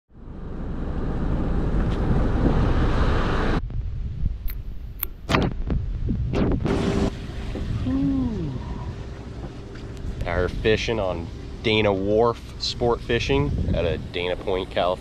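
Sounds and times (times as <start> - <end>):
wind rushing over microphone: 1.5 - 9.0, 10.0 - 15.0.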